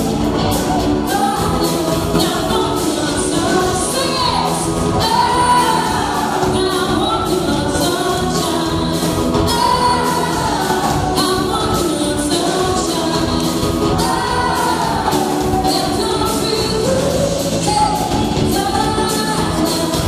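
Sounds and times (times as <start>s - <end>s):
live band playing with singing: 0.0s - 20.0s.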